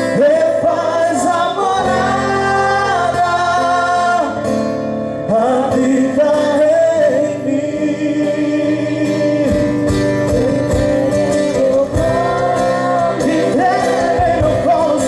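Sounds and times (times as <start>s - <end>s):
acoustic guitar: 0.0s - 15.0s
voices singing: 0.1s - 4.4s, 5.4s - 15.0s
percussion beats: 9.5s - 15.0s.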